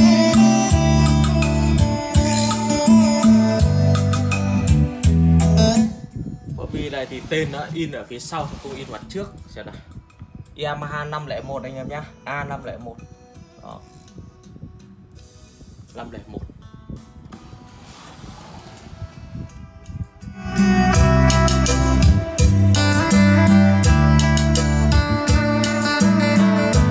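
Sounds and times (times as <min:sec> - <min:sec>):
bass-heavy music through loudspeakers: 0:00.0 - 0:07.7, 0:20.2 - 0:26.9
man's voice: 0:05.6 - 0:09.9.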